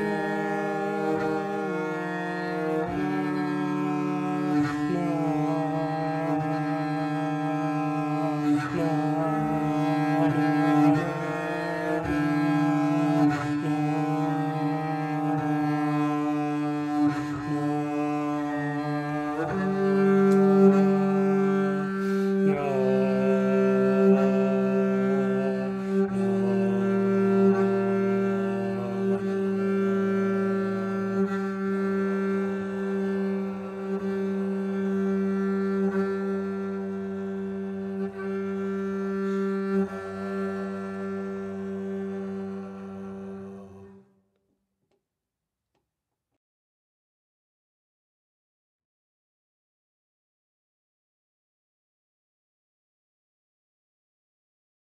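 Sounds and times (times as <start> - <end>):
bowed double bass: 0.0 - 44.1.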